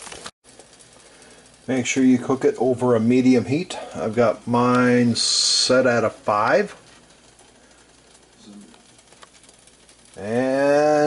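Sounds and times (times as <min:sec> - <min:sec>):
small ticks: 0:00.0 - 0:01.7, 0:06.7 - 0:11.0
eggs sizzling in frying pan: 0:00.0 - 0:11.0.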